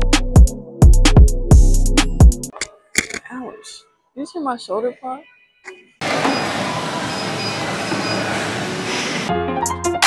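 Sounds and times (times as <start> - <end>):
treadmills mechanical noise: 6.0 - 9.3.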